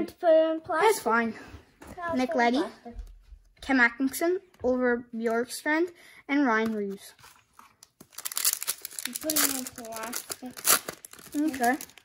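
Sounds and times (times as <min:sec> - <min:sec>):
foil wrapper tearing and crinkling: 0:07.8 - 0:12.0.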